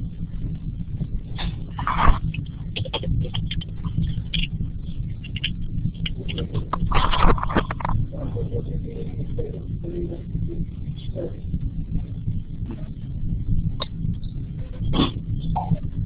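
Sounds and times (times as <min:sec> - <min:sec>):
low electrical hum and buzz: 0:00.0 - 0:16.0
small clicks and crackles: 0:00.5 - 0:08.2.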